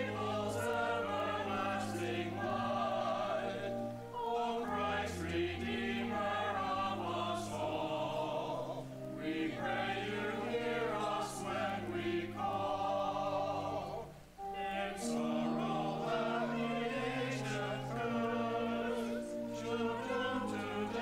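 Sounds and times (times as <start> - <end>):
church choir singing: 0.0 - 21.0.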